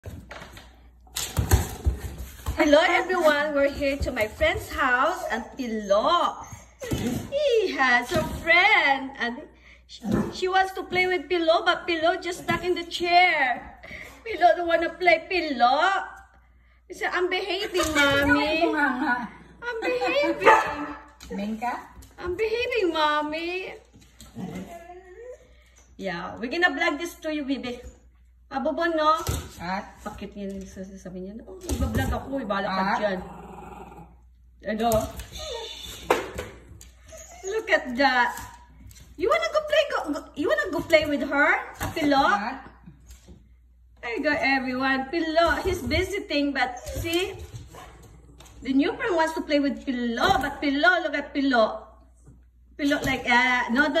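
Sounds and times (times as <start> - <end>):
dog paws thumping on wood floor: 0.0 - 5.6, 6.2 - 9.0, 34.8 - 50.7.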